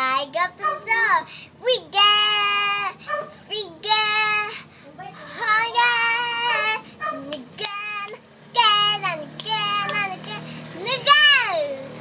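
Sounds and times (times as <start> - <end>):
girl singing: 0.0 - 12.0.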